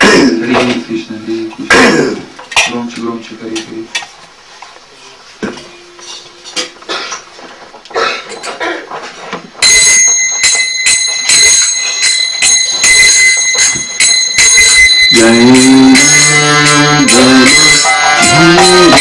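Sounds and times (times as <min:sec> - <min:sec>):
hand cymbals clashing: 0:05.7 - 0:07.2, 0:09.6 - 0:19.0
hand cymbals clinking: 0:09.6 - 0:19.0.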